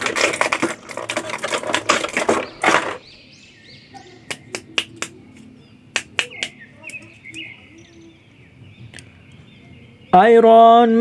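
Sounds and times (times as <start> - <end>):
plastic blister tray crackling: 0.0 - 3.0.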